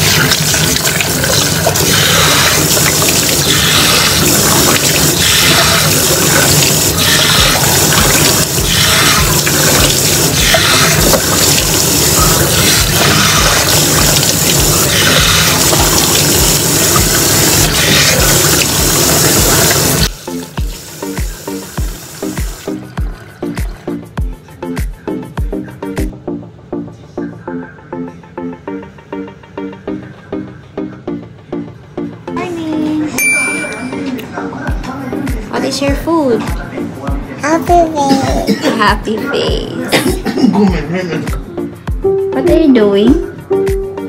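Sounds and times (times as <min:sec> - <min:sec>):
tap water running: 0:00.0 - 0:24.3
background music with steady beat: 0:18.8 - 0:44.0.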